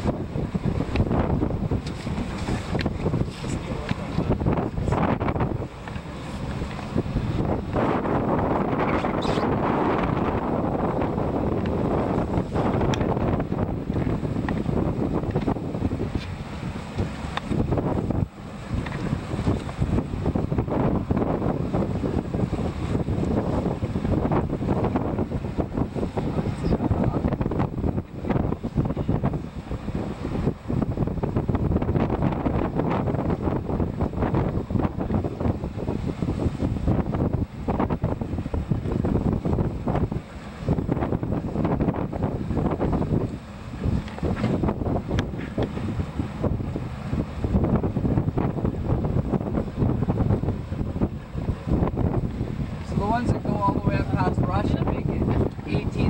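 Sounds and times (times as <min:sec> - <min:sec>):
choppy sea waves: 0:00.0 - 0:56.0
wind buffeting microphone: 0:00.0 - 0:56.0.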